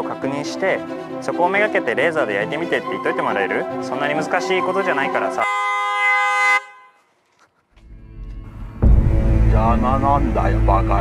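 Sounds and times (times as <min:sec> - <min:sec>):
car horn blast: 0:05.4 - 0:07.1
low rumble: 0:07.8 - 0:11.0.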